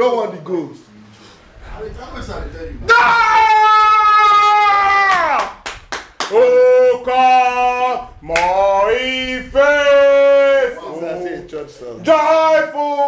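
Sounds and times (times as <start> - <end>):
sharp claps: 5.1 - 6.4, 8.3 - 8.6.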